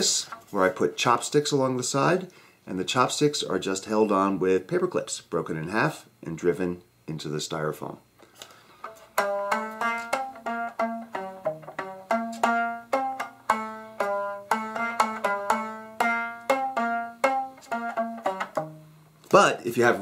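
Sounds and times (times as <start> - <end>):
plucked rubber band notes: 8.8 - 19.8.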